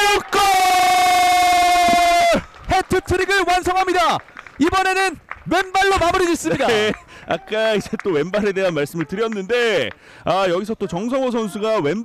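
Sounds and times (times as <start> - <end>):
man shouting goal: 0.0 - 2.4.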